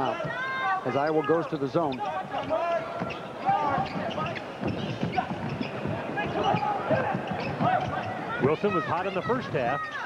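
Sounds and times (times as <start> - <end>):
voices in an arena: 0.0 - 10.0.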